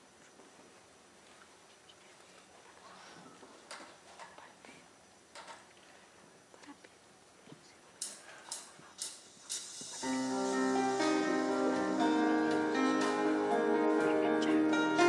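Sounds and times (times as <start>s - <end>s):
keyboard synthesizer playing: 10.0s - 15.0s.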